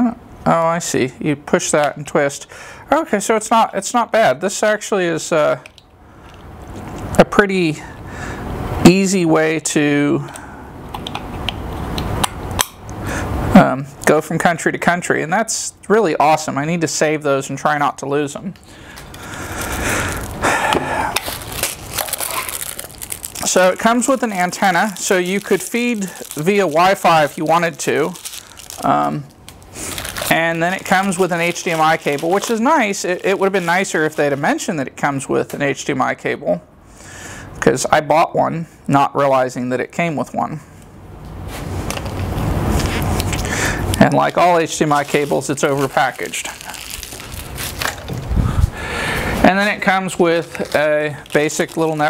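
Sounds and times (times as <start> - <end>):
cable handling rustle: 18.5 - 34.7, 41.5 - 52.0
plastic bag crinkling: 18.6 - 34.6, 44.2 - 52.0.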